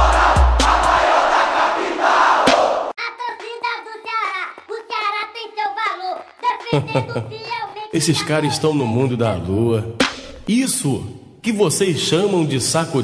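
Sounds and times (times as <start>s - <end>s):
bass drum beats: 0.0s - 1.1s
crowd chanting: 0.0s - 3.0s
high-pitched voice: 3.0s - 9.2s.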